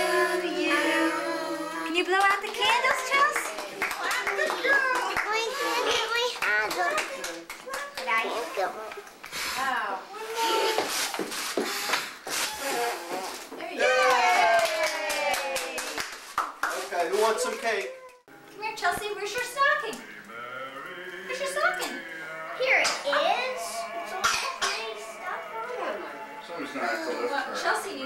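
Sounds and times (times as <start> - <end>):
child blowing at candles: 9.3 - 13.4
background music: 19.7 - 28.0
coughs: 24.1 - 24.9.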